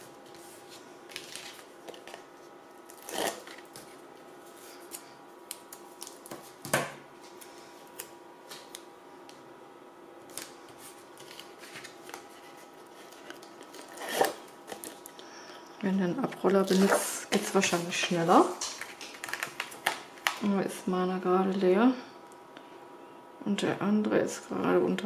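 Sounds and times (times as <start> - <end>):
paper rustling and tapping: 18.3 - 20.5.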